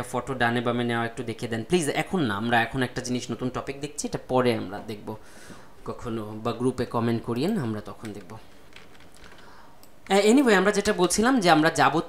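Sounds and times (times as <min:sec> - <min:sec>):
person speaking: 0:00.0 - 0:12.0
keystrokes on computer keyboard: 0:08.0 - 0:10.2.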